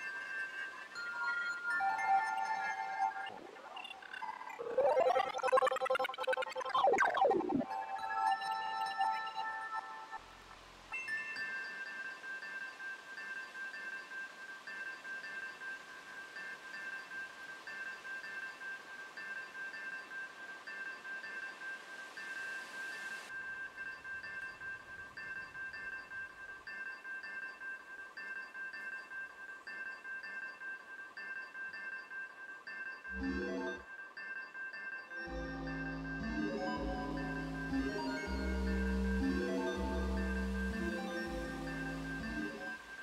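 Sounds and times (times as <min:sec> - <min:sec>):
synthesizer pulsing high notes: 0:01.6 - 0:10.4, 0:33.1 - 0:33.8, 0:35.2 - 0:43.0.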